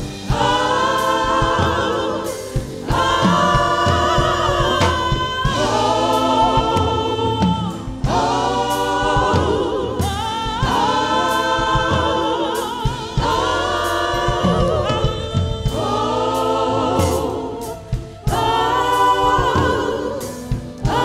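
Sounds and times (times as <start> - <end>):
gospel choir singing: 0.0 - 21.0
keyboard and band accompaniment: 0.0 - 21.0.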